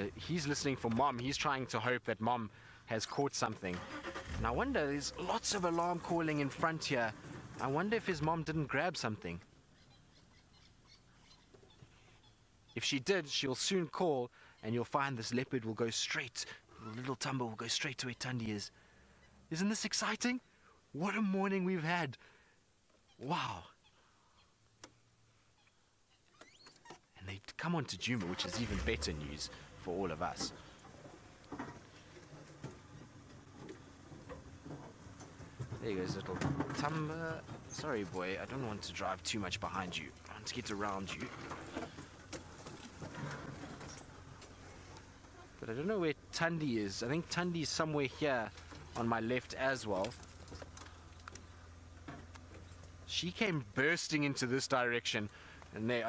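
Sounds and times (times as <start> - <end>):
vehicle engine idling: 3.6 - 8.7, 28.1 - 53.8.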